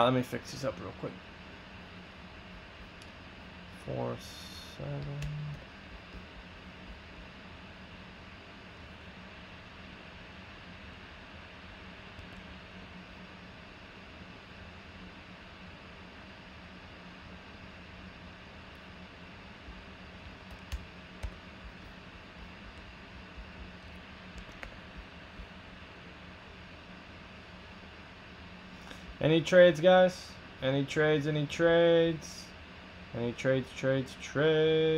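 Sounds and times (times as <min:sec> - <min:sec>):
low room hum: 0:00.0 - 0:34.9
keyboard typing clicks: 0:20.5 - 0:21.4, 0:24.3 - 0:24.8.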